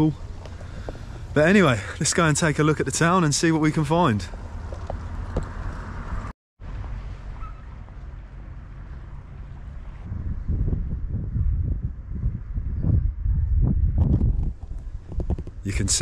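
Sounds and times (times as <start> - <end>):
wind buffeting microphone: 9.5 - 16.0.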